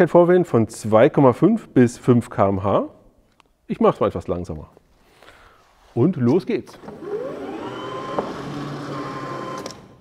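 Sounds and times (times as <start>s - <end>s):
lawn mower electric motor whine: 6.9s - 10.0s.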